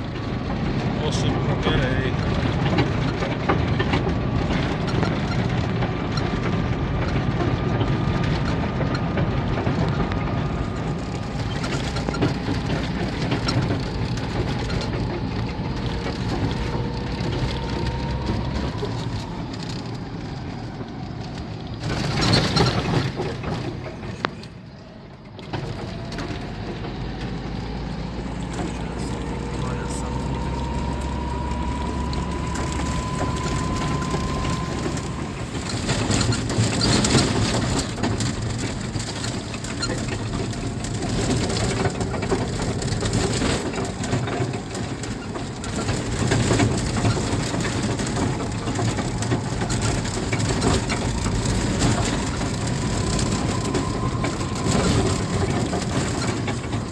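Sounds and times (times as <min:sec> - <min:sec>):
road noise: 0:00.0 - 0:56.9
vehicle engine: 0:00.0 - 0:56.9.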